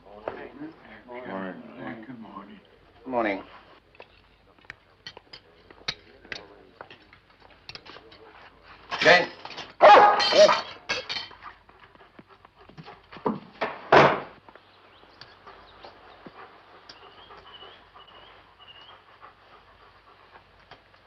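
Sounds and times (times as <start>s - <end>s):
dog barking: 9.8s - 10.7s.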